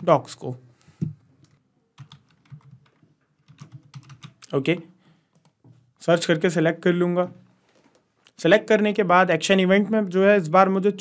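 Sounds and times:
typing on computer keyboard: 2.0s - 4.5s.

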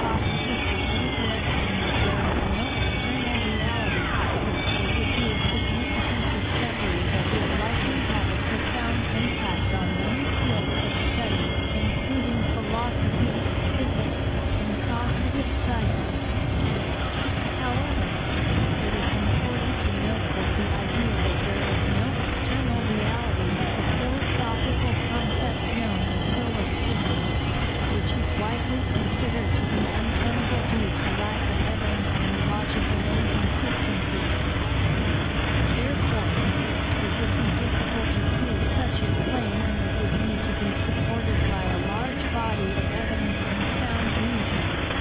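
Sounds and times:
overlapping music and voices drone: 0.0s - 45.0s
thick wash of noise: 0.0s - 45.0s.

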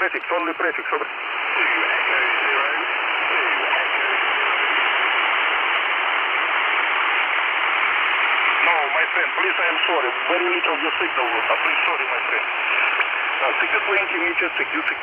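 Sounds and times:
faint radio voice: 0.0s - 5.2s, 8.6s - 15.0s
radio static hiss: 0.0s - 15.0s.

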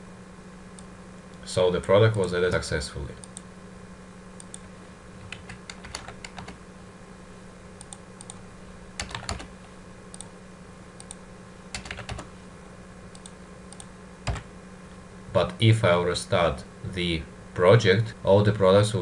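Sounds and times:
steady low hum: 0.0s - 19.0s
computer keyboard typing: 5.2s - 6.6s, 9.0s - 9.5s, 11.0s - 12.3s, 13.2s - 14.5s.

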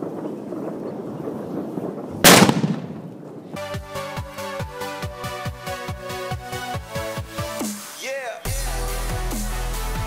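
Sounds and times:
firecracker bang: 2.2s - 3.2s
electronic dance music: 7.2s - 10.0s.

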